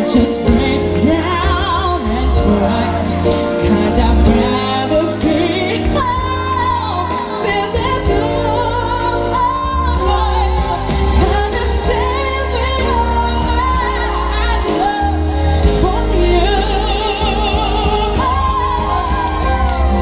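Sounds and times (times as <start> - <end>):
bass: 0.0 - 20.0
electric keyboard chords: 0.0 - 20.0.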